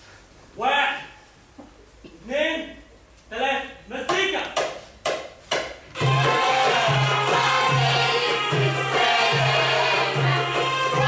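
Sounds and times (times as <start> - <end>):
group singing: 6.0 - 11.0.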